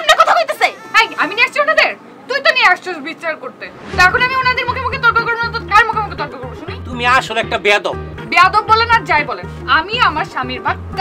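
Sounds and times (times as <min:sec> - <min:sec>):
woman shouting shrilly: 0:00.0 - 0:02.6.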